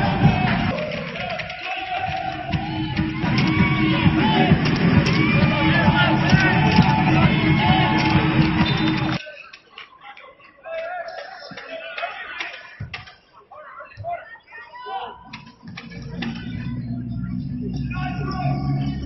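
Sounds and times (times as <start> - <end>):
loud music: 0.0 - 9.2, 15.4 - 19.0
crowd noise: 0.0 - 19.0
scattered voices: 0.0 - 19.0.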